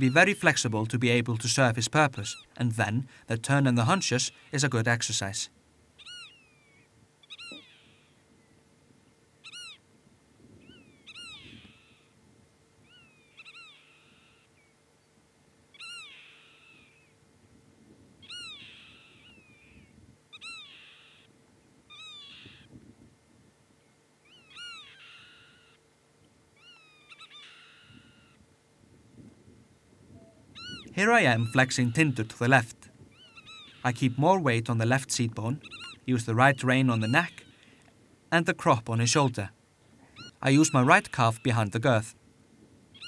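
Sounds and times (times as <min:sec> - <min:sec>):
faint bird calling: 0:02.0 - 0:03.2, 0:03.8 - 0:09.9, 0:10.5 - 0:12.2, 0:12.8 - 0:17.2, 0:18.2 - 0:22.8, 0:23.8 - 0:25.9, 0:26.5 - 0:28.5, 0:30.1 - 0:38.0, 0:38.7 - 0:42.1.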